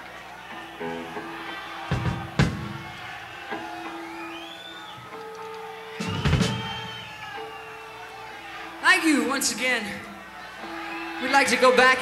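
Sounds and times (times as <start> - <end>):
drum hits: 1.9 - 3.0, 6.0 - 6.9
high whistle-like tone: 3.9 - 5.0, 6.0 - 8.0.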